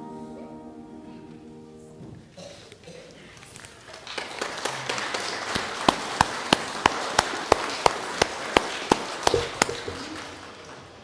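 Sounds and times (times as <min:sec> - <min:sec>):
congregation applauding: 0:03.7 - 0:11.0
loud close hand clapping: 0:03.9 - 0:11.0.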